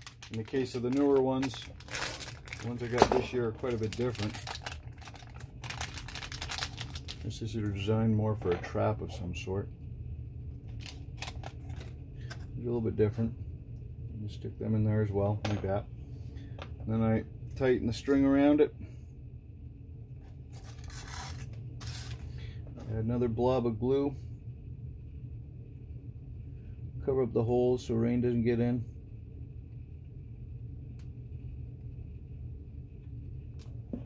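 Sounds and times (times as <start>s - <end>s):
foil packet crinkling: 0.0s - 7.3s, 10.7s - 11.9s, 20.5s - 22.4s
steady low hum: 0.0s - 34.0s
string rustling and scraping: 20.2s - 23.0s.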